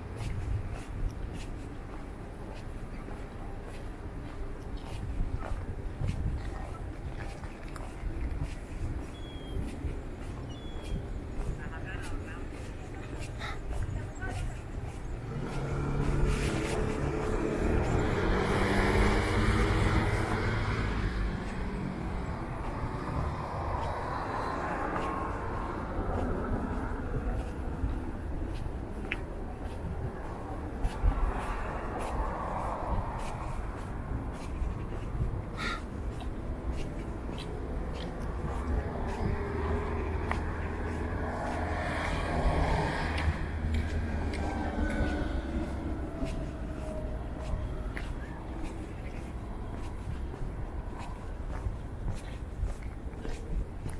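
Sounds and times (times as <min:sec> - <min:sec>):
low rumble of traffic: 0:00.0 - 0:53.9
motor vehicle passing: 0:12.6 - 0:53.9.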